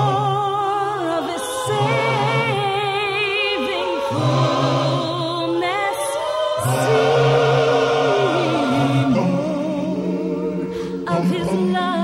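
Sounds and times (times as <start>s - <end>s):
woman singing with vibrato: 0.0s - 9.0s, 9.6s - 12.0s
gospel choir singing: 0.0s - 12.0s.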